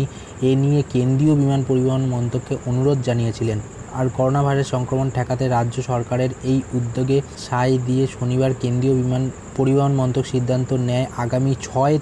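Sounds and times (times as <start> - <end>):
faint high-pitched pulsing tone: 0.0 - 12.0.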